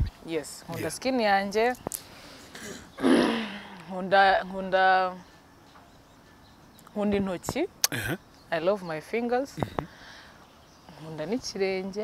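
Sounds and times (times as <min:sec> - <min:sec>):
woman clearing her throat: 0:02.6 - 0:03.5.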